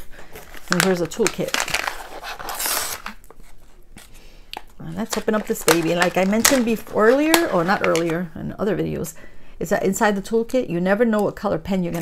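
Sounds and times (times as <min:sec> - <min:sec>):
plastic pouch tearing open: 0:00.2 - 0:03.5, 0:05.0 - 0:08.1.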